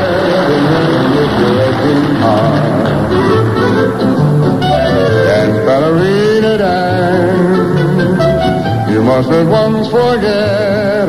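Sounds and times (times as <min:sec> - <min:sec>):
dance band music on radio: 0:00.0 - 0:04.1.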